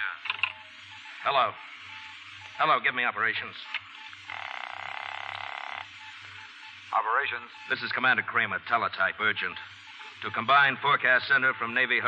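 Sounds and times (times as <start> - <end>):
telephone buzzer ringing: 4.0 - 6.6.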